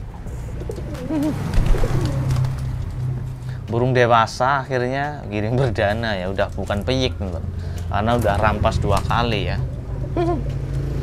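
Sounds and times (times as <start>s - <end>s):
pigeon cooing: 0.0s - 3.3s, 9.5s - 11.0s.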